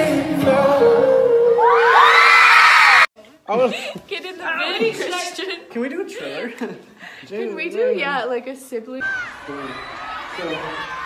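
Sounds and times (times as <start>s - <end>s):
crowd screaming: 1.5s - 3.1s, 9.0s - 11.0s.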